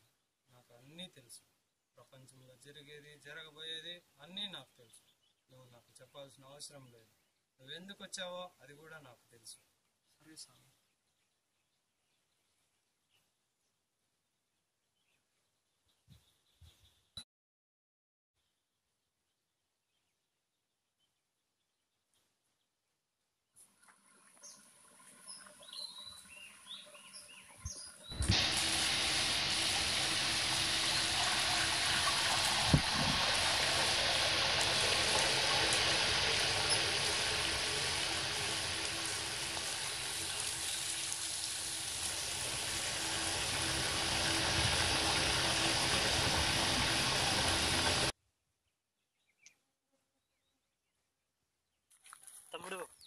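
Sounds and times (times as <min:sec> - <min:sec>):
water spraying from a leaking pipe: 0:28.2 - 0:48.1.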